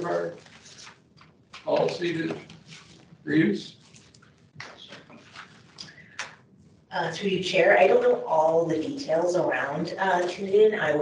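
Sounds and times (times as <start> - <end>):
rustling: 0.0 - 6.4.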